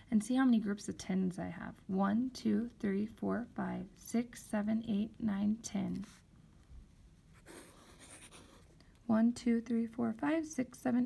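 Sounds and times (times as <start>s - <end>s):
pen scratching on paper: 7.4s - 8.7s.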